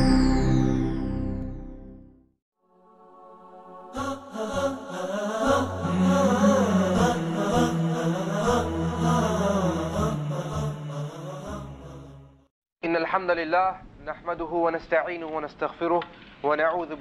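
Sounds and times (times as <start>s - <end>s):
vocal chant: 2.7s - 12.5s.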